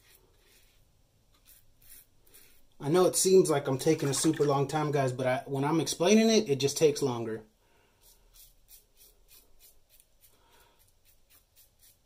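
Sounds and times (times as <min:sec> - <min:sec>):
razor scraping stubble: 0:01.4 - 0:02.6, 0:08.0 - 0:12.0.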